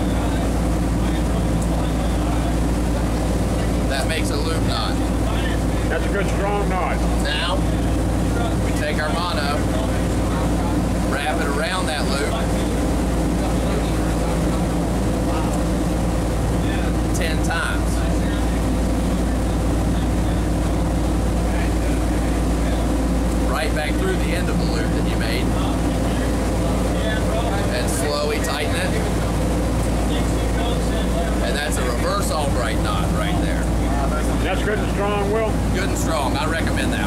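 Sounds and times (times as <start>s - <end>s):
boat engines droning: 0.0s - 37.0s.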